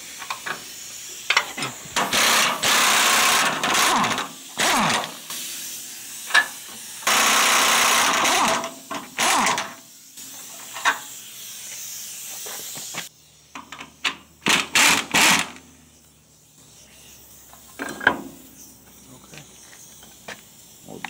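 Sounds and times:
impact wrench bursts: 0.0 - 16.0.

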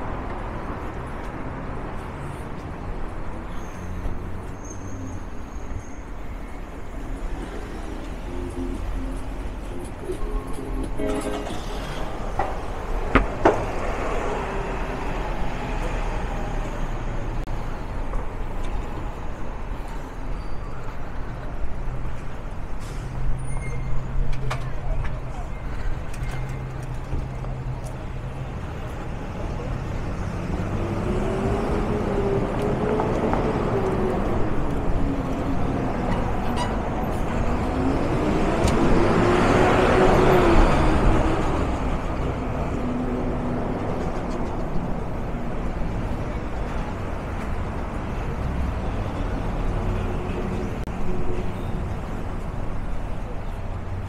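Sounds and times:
hum of passing cars: 6.2 - 23.5, 24.6 - 54.0.

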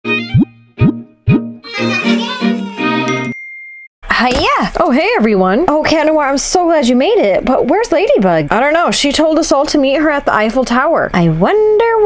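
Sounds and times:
musical jingle with chiming notes: 0.1 - 3.9.

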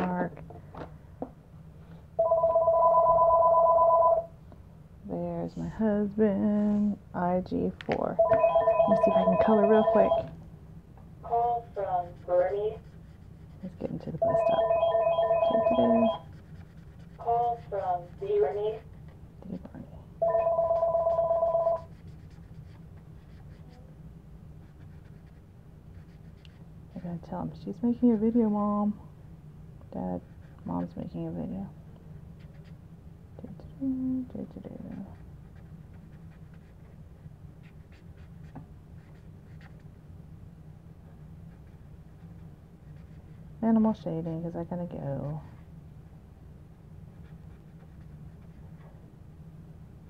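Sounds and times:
telephone ringing two-tone: 2.2 - 4.3, 8.2 - 10.3, 14.2 - 16.2, 20.2 - 21.8
marker scratching on paper: 11.3 - 14.6, 15.6 - 19.1, 20.7 - 23.8, 24.6 - 27.2, 32.4 - 32.8, 34.8 - 39.8, 41.5 - 43.4, 47.1 - 48.9.

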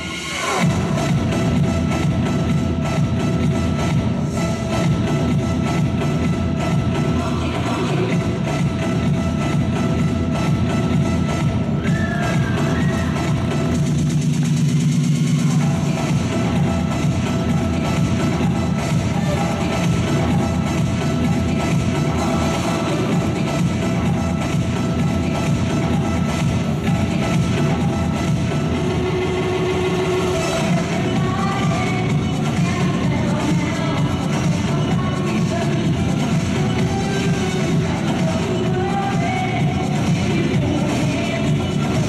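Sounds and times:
music: 0.0 - 42.0.

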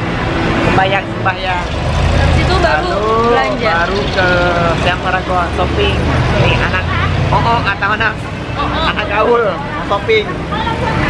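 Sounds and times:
low rumble of road traffic: 0.0 - 11.0
group talking and laughing: 0.9 - 11.0.

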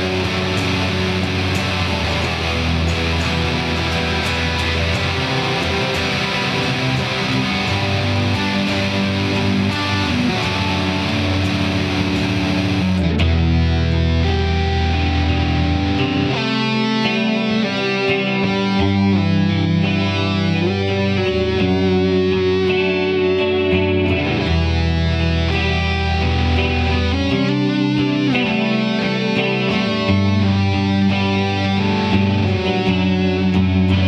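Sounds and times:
electric guitar rock chords: 0.0 - 34.0
picked guitar melody: 0.0 - 34.0.

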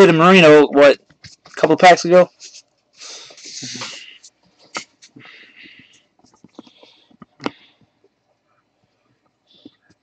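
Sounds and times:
soft rustle: 1.1 - 10.0.

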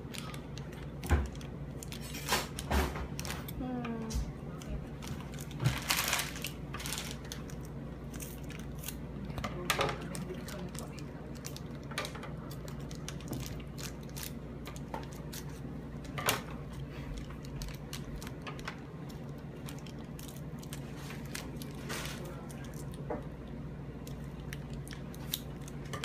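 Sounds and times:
plastic wrapper crinkling: 0.0 - 3.8, 4.6 - 9.3, 9.9 - 23.0, 24.0 - 26.0
steady low hum: 0.0 - 26.0.

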